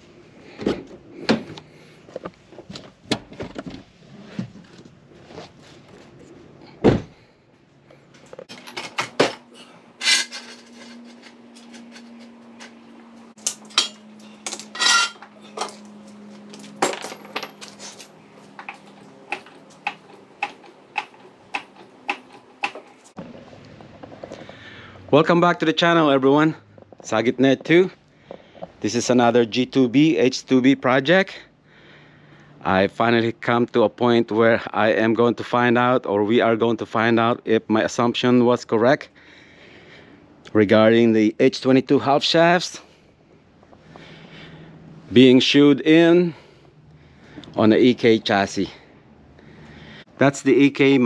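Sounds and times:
hand tools clinking and knocking: 8.3 - 12.8, 13.4 - 23.1.

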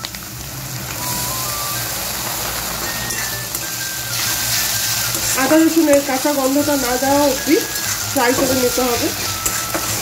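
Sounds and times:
onions sizzling in hot oil: 0.0 - 10.0
background tune of held notes: 0.9 - 10.0
spatula stirring in a pan: 2.8 - 10.0.

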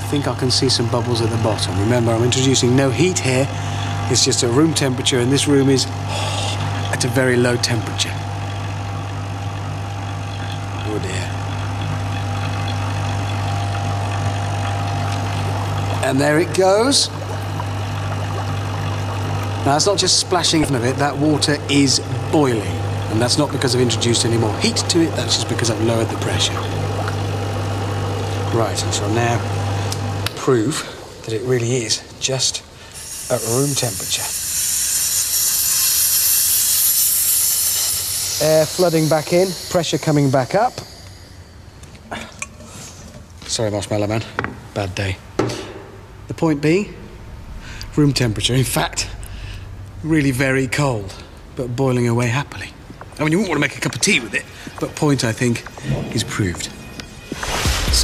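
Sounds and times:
vacuum pump humming: 0.0 - 43.4
air hissing into vacuum jar: 32.7 - 43.2, 54.5 - 58.0.

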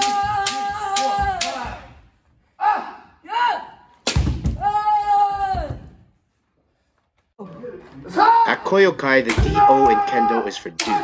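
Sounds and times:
long held shout: 0.0 - 1.9.

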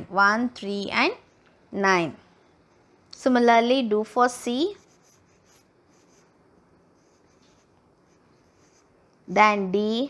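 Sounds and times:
soft scratchy sounds: 4.3 - 9.4.

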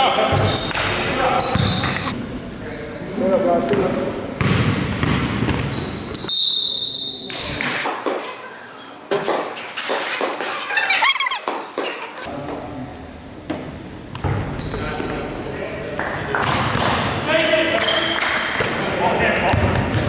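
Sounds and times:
basketball bouncing on court: 0.3 - 2.1, 4.4 - 6.2, 19.5 - 20.0.

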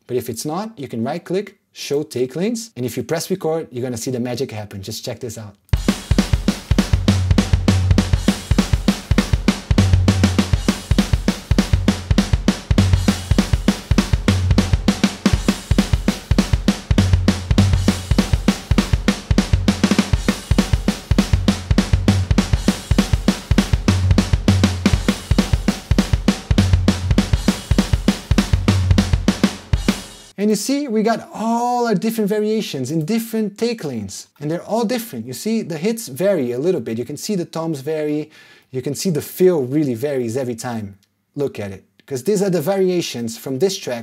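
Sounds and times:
rock drum beat: 5.7 - 30.4.

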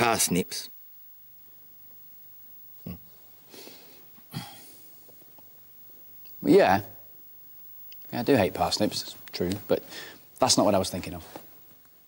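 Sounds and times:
soft breathy hiss: 0.0 - 12.0
person grunting hmm: 2.8 - 3.0.

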